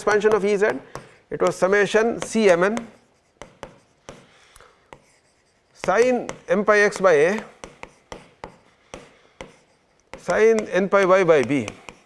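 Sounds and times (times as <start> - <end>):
stylus scratching: 0.0 - 12.0
stylus tapping on tablet screen: 0.0 - 12.0.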